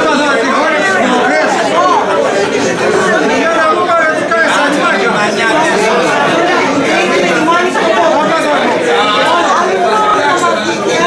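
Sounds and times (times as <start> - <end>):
overlapping conversation: 0.0 - 11.0.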